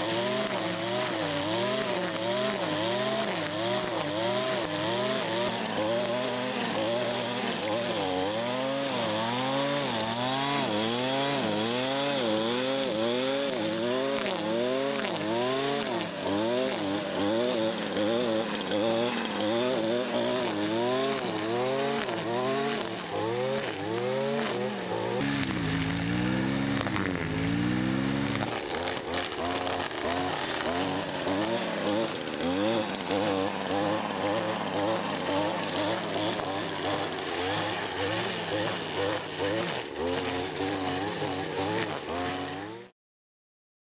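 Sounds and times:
brushcutter cutting grass: 0:00.0 - 0:42.9.

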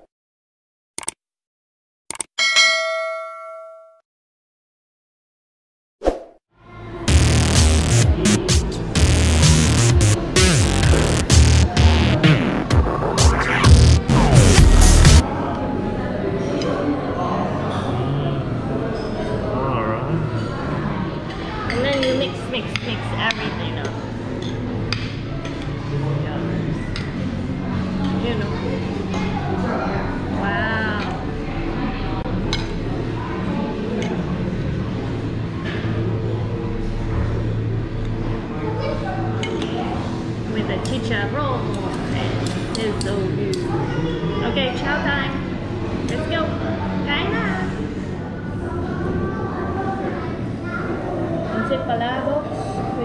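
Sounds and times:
short clicks: 0:01.0 - 0:01.2, 0:02.1 - 0:02.3
metallic bell ding: 0:02.4 - 0:04.0
background music: 0:06.9 - 0:15.2
indistinct voices: 0:07.1 - 0:24.1.

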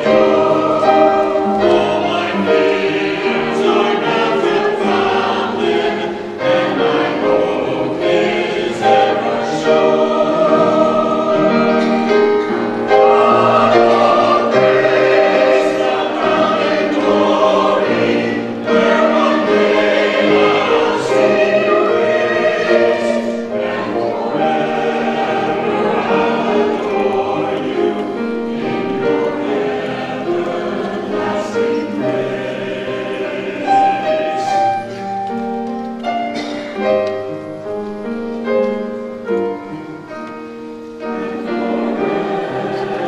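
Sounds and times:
choir singing in parts: 0:00.0 - 0:43.0
grand piano accompaniment: 0:00.0 - 0:43.0.

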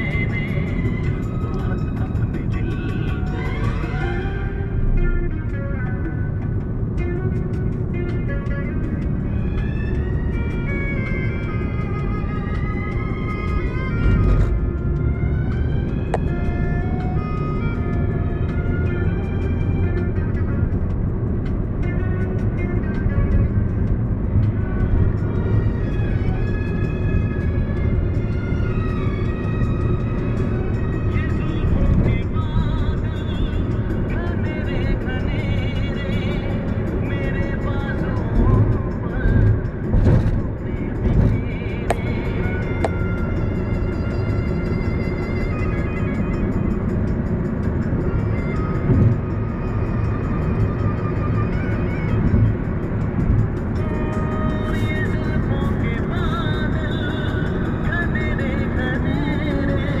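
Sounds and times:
car driving rumble: 0:00.0 - 1:00.0
music playing: 0:00.0 - 1:00.0.

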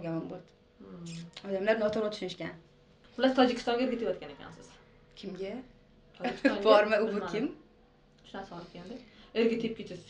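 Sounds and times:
woman talking: 0:03.2 - 0:07.6, 0:08.3 - 0:10.0.

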